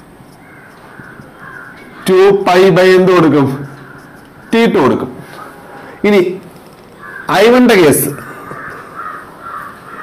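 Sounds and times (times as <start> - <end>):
crows cawing: 0.4 - 2.4, 3.5 - 6.0, 6.8 - 10.0.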